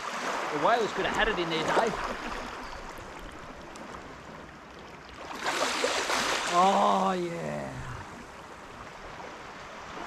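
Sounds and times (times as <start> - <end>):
small waves lapping on sand: 0.0 - 10.0.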